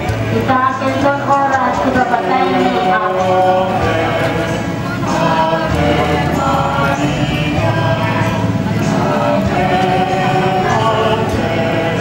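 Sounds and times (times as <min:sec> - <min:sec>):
choir singing a hymn: 0:00.0 - 0:12.0
steady low notes: 0:00.0 - 0:12.0.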